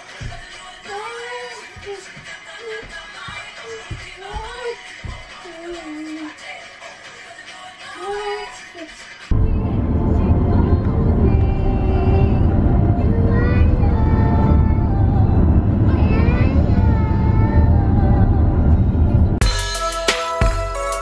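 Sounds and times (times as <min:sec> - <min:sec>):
road and wind noise inside car: 0:09.3 - 0:19.4.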